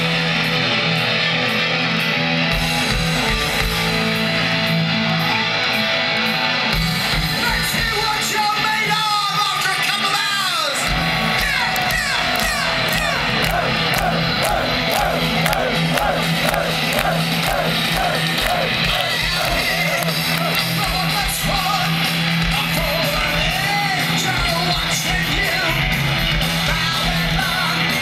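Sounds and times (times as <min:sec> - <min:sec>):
bass and drums: 0:00.0 - 0:05.8, 0:06.6 - 0:09.0, 0:10.8 - 0:28.0
wavering lead guitar melody: 0:00.0 - 0:07.4, 0:10.9 - 0:28.0
heavy metal band playing live: 0:00.0 - 0:28.0.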